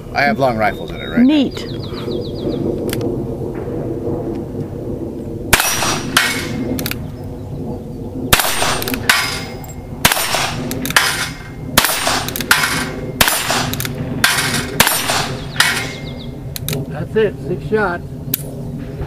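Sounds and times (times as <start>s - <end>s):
revolver gunshots: 4.8s - 7.1s, 8.2s - 16.8s.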